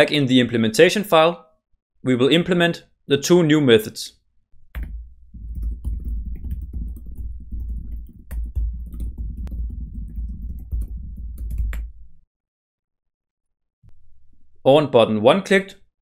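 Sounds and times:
computer keyboard typing: 4.7 - 12.0.

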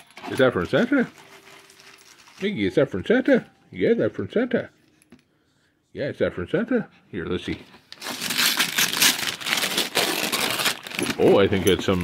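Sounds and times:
wrapping paper crinkling and tearing: 0.1 - 2.6, 7.9 - 11.6.

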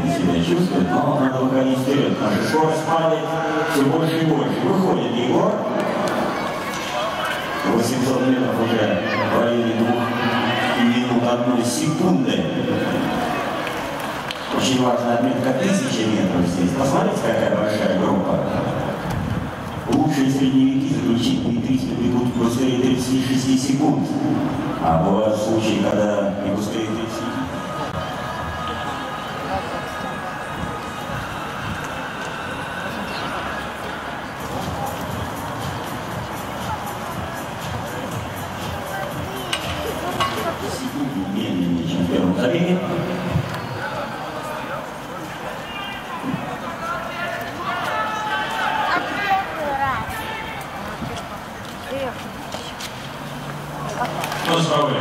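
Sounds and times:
distant public-address commentator: 0.0 - 55.0
stadium crowd background noise: 0.0 - 55.0.

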